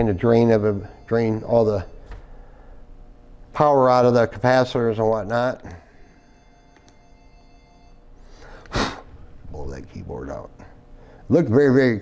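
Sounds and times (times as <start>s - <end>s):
faint background music: 0.0s - 2.1s.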